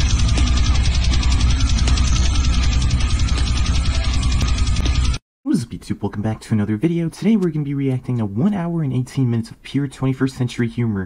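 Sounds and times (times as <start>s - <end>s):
deep steady bass: 0.0s - 5.2s
fast even rattle: 0.0s - 5.2s.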